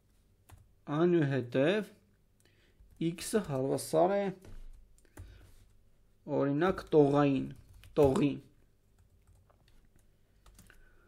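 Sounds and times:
keystrokes on computer keyboard: 0:07.6 - 0:10.8.

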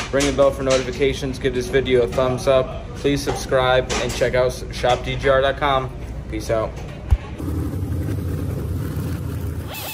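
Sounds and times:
steady low rumble: 0:07.2 - 0:09.6.

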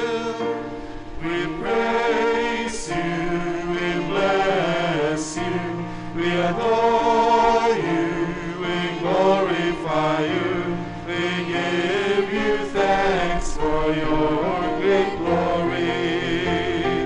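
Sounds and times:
church singers singing: 0:00.0 - 0:17.0
held instrumental accompaniment: 0:00.0 - 0:17.0.

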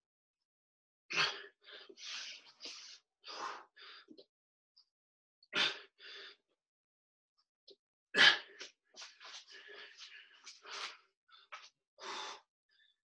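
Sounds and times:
man breathing hard: 0:01.1 - 0:04.2, 0:05.6 - 0:06.4, 0:08.2 - 0:13.0.

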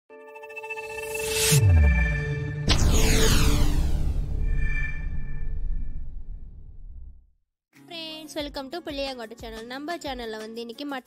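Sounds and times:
rising whoosh: 0:01.0 - 0:07.2
deep falling boom: 0:01.6 - 0:07.3.

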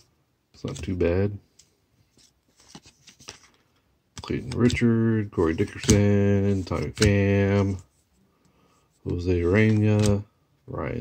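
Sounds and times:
trading cards rustling and ticking: 0:00.6 - 0:07.9, 0:08.5 - 0:10.3.

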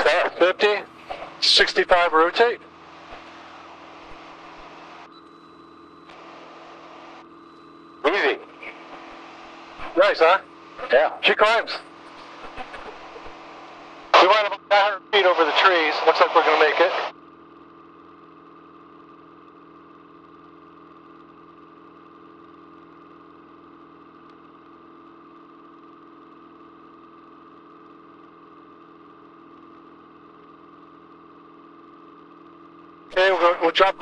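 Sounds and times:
light aircraft engine droning: 0:00.0 - 0:21.2.

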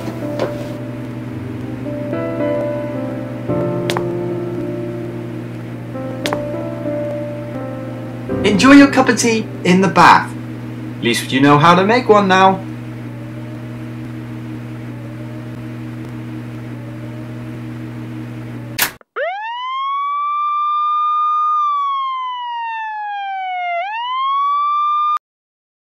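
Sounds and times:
low electrical hum: 0:00.0 - 0:18.9
siren wail: 0:19.0 - 0:25.2.

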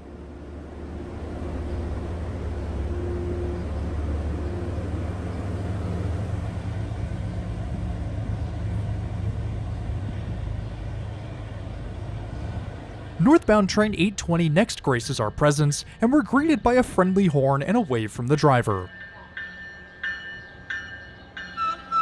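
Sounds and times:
diesel locomotive engine droning: 0:00.0 - 0:22.0
train coaches rumbling on rails: 0:00.0 - 0:22.0.

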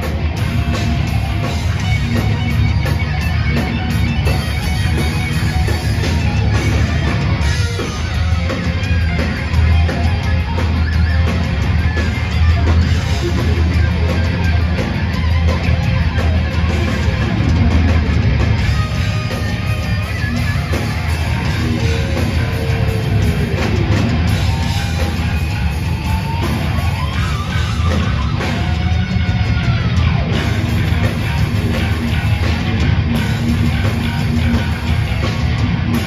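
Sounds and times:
metal band playing live: 0:00.0 - 0:36.0.

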